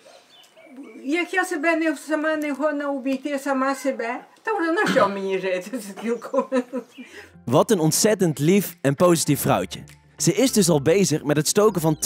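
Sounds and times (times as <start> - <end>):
elderly woman speaking: 0.7 - 6.5.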